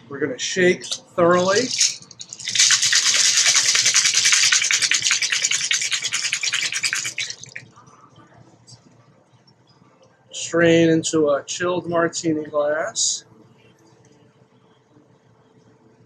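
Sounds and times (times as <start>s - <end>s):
ice rattling in cocktail shaker: 1.3s - 7.6s.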